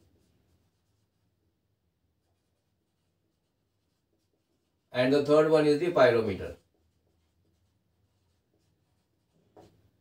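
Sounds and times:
marker writing on whiteboard: 0.0 - 10.0.

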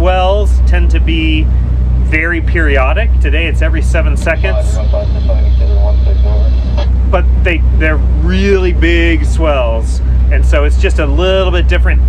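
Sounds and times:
boat engines droning: 0.0 - 12.0.

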